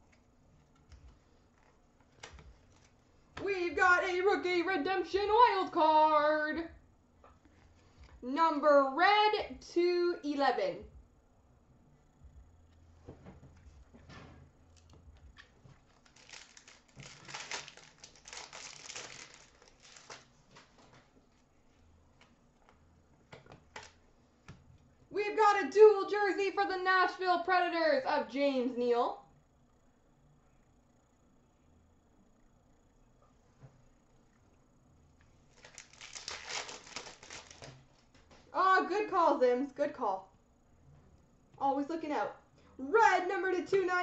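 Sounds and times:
cards rustling: 0:14.8 - 0:21.0, 0:35.5 - 0:37.8
wrapper crinkling: 0:15.7 - 0:21.0, 0:35.5 - 0:37.8.

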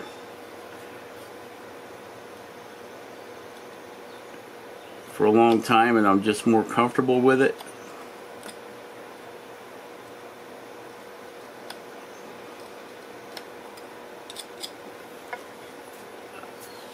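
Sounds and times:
steady low hiss: 0:00.0 - 0:16.9.

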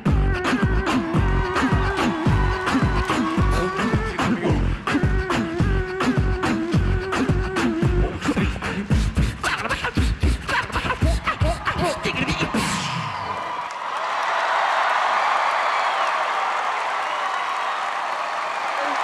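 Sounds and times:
beatbox vocal drum beat: 0:00.0 - 0:13.0
audience applause and cheering: 0:00.5 - 0:04.7, 0:10.7 - 0:19.0.

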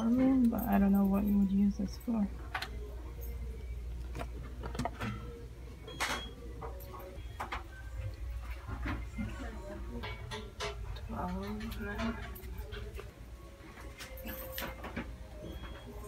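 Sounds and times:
faint background music: 0:00.0 - 0:16.0.

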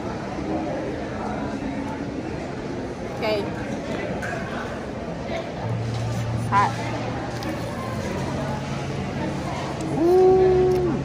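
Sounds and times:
busy indoor room noise: 0:00.0 - 0:11.0.

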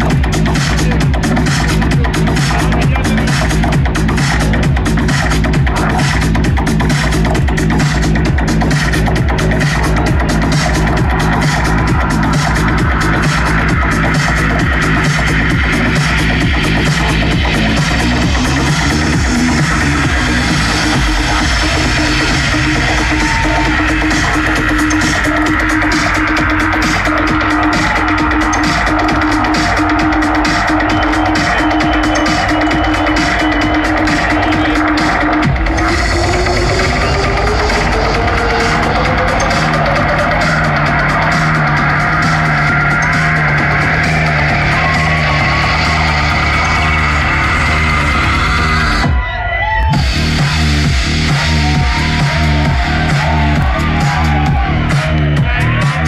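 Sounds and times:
electronic music with steady beat: 0:00.0 - 0:56.0
pulsing bass pattern: 0:00.0 - 0:56.0.

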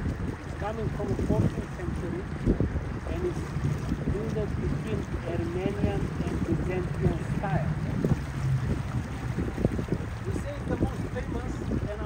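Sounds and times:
boat motor rumbling: 0:00.0 - 0:12.0
wind on microphone: 0:00.0 - 0:12.0.

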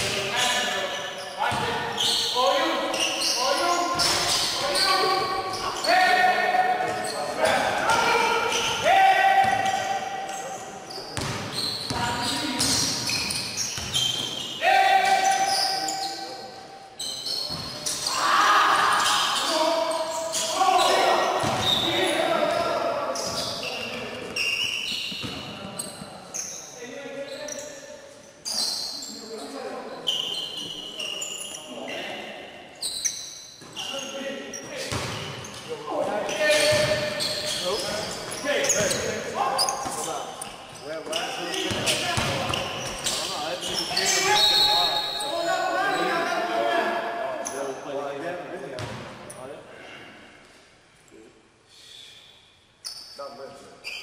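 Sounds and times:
basketball bouncing on court: 0:11.2 - 0:14.3, 0:21.4 - 0:21.8, 0:34.8 - 0:35.4, 0:36.7 - 0:37.4, 0:41.6 - 0:43.2, 0:48.8 - 0:49.1
players shouting: 0:18.0 - 0:22.9.

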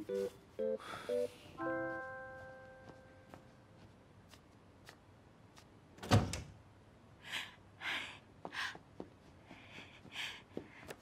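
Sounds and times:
door shutting with heavy thud: 0:06.0 - 0:06.6.

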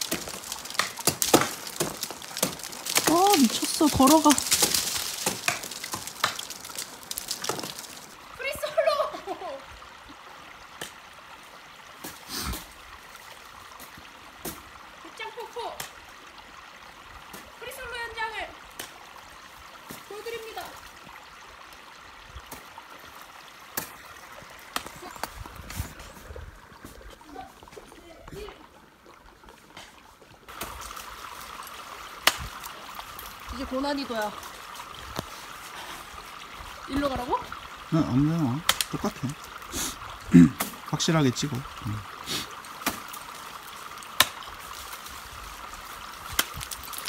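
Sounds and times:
ice axe and crampon strikes: 0:00.0 - 0:07.8
meltwater trickling under ice: 0:00.0 - 0:47.0
brief vocal sounds: 0:40.3 - 0:40.6.

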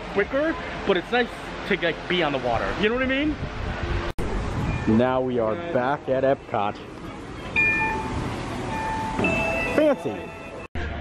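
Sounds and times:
reader two-tone chime: 0:07.6 - 0:08.1, 0:08.7 - 0:10.7.

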